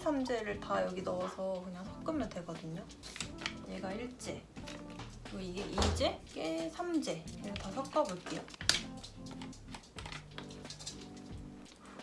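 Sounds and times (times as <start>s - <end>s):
soft background music: 0.0s - 12.0s
plastic bottle clicks and taps: 8.4s - 11.0s.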